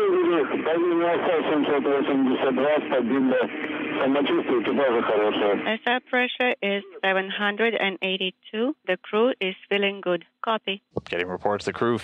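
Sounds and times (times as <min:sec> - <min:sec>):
radio voice calls: 0:00.0 - 0:08.1, 0:11.0 - 0:12.0.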